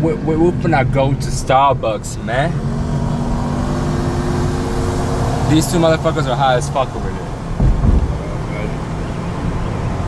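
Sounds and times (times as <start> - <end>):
car cabin road rumble: 4.6 - 10.0.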